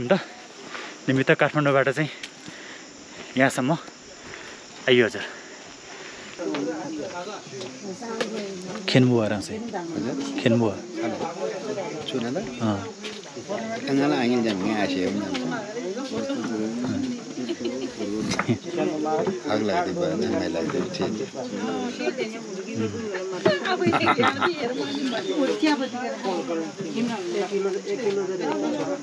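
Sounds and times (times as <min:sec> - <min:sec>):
people talking: 0:00.0 - 0:00.4, 0:06.4 - 0:29.0
high-pitched insect chirring: 0:00.0 - 0:28.0.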